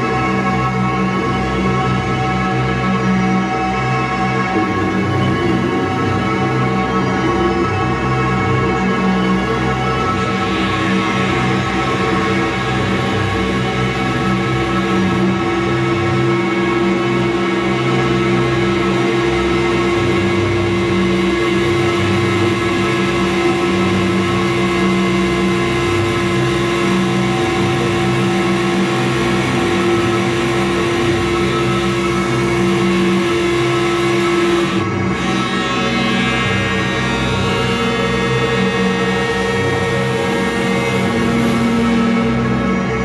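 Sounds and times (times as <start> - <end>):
droning experimental music: 0.0 - 43.0
low held note: 18.4 - 42.9.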